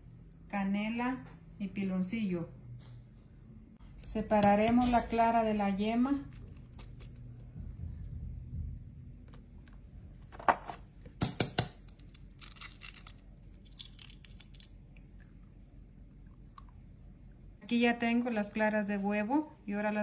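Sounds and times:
eggshells cracking: 0:11.5 - 0:15.4.

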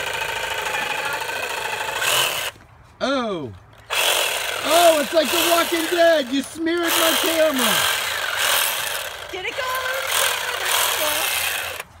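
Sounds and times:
power saw buzzing: 0:00.0 - 0:02.6, 0:03.8 - 0:12.0.

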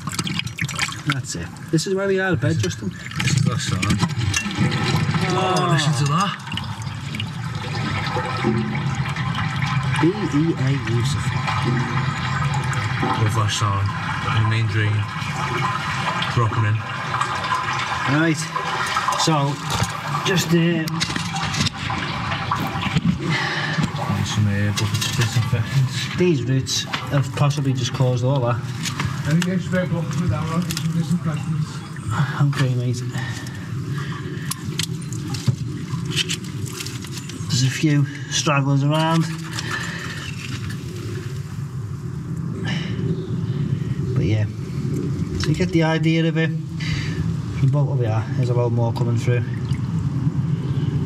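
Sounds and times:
water rushing in sewer channel: 0:00.0 - 0:51.0.

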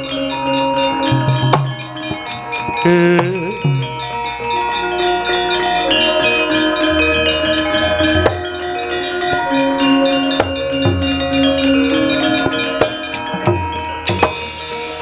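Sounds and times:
gamelan metallophones: 0:00.0 - 0:15.0
deep tone: 0:02.8 - 0:04.1.

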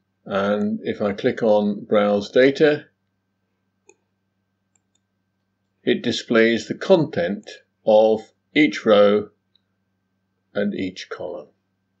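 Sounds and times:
man speaking: 0:00.2 - 0:03.0, 0:05.8 - 0:09.4, 0:10.5 - 0:11.6
computer mouse clicks: 0:04.7 - 0:05.1.

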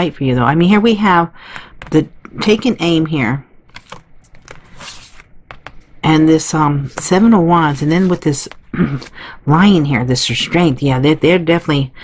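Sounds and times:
cards sliding on cloth: 0:03.7 - 0:05.6
cards clicking: 0:03.7 - 0:05.9.

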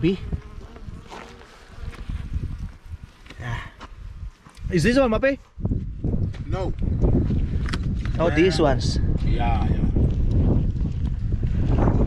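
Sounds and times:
bees buzzing: 0:00.0 - 0:02.4.

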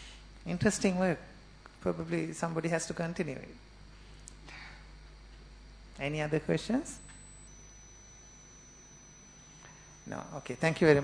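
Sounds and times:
low steady hum: 0:00.0 - 0:11.0
high-pitched electronic whine: 0:05.6 - 0:11.0.

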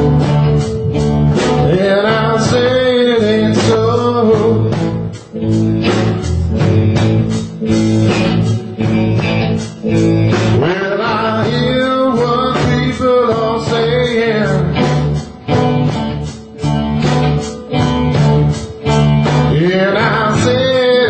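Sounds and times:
drums: 0:00.0 - 0:21.0
electric guitar: 0:00.0 - 0:21.0
live blues band: 0:00.0 - 0:21.0
steady bass line: 0:00.0 - 0:21.0.

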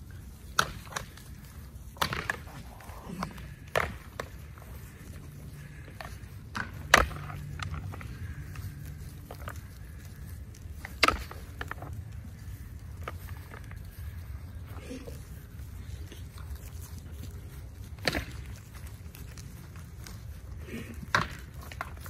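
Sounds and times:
goat horns clacking: 0:00.1 - 0:22.0.

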